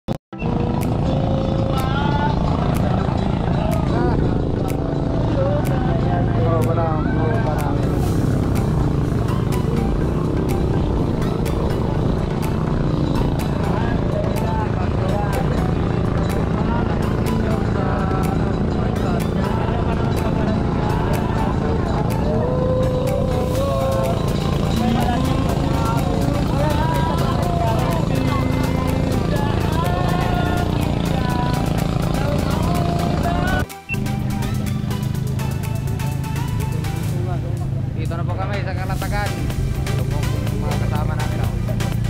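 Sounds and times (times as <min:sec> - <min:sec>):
boat engine running: 0:00.3 - 0:42.0
song with vocals: 0:00.4 - 0:42.0.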